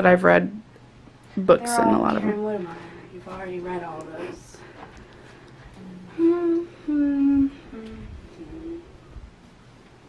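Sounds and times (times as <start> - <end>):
person humming: 5.8 - 9.0.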